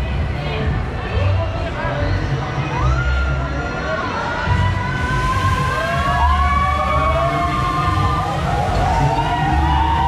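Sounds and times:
pounding bass beat: 0.0s - 1.4s, 4.5s - 10.0s
high wailing gliding tones: 4.4s - 10.0s.

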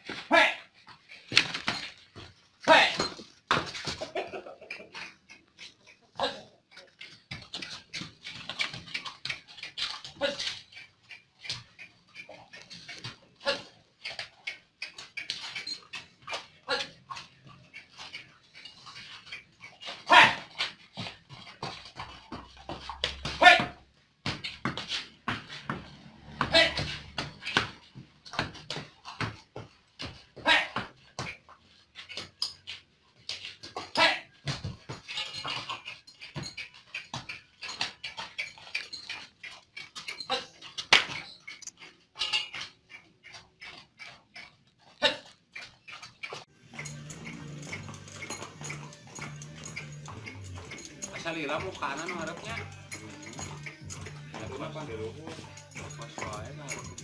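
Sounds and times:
background music with a beat: 46.6s - 57.0s.

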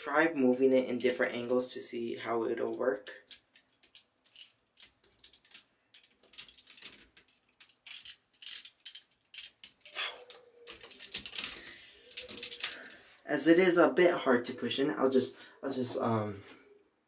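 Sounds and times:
plastic toy parts clicking: 3.0s - 13.0s.

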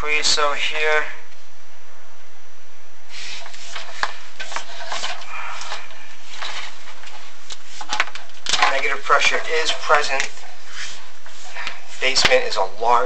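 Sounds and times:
camera rod scraping brick walls: 3.1s - 12.6s.

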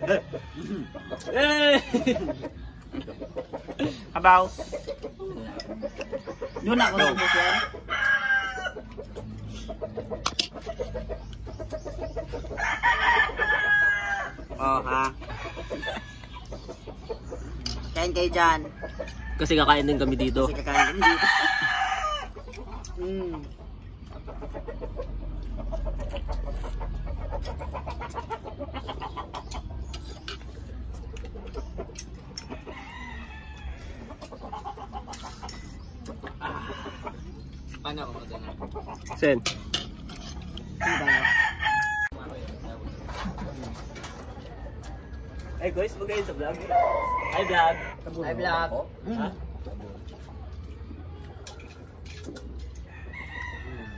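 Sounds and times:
chickens clucking: 0.0s - 53.9s
rooster crowing: 0.1s - 2.0s, 6.7s - 9.0s, 12.5s - 14.4s, 20.6s - 22.4s, 32.4s - 34.3s, 40.8s - 42.2s, 46.6s - 48.0s, 52.8s - 53.9s.

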